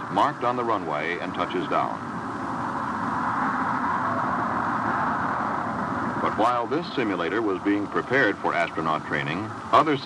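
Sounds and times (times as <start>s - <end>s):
jet and rocket engines roaring: 0.0s - 10.0s.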